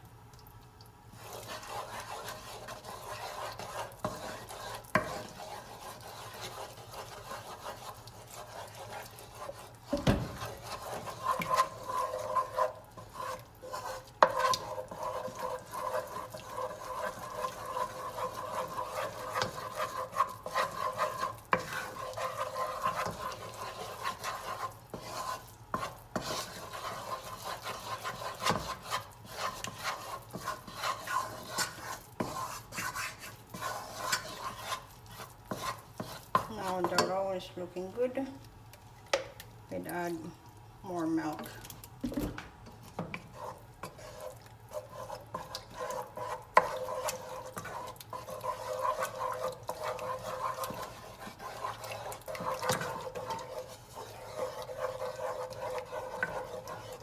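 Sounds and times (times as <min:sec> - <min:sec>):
wooden spoon scraping saucepan: 0:01.1 - 0:38.2, 0:40.9 - 0:57.0.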